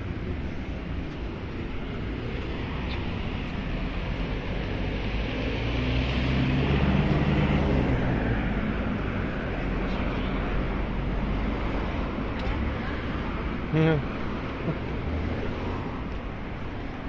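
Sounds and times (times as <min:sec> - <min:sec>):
street traffic noise: 0:00.0 - 0:17.0
vehicle engine: 0:00.0 - 0:17.0.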